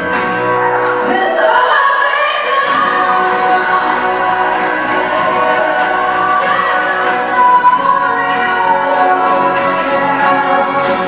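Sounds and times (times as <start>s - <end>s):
acoustic guitar: 0.0s - 11.0s
symphony orchestra: 0.0s - 11.0s.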